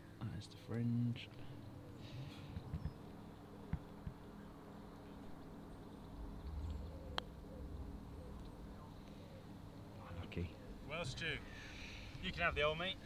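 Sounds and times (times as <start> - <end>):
low rumble: 6.0 - 9.0.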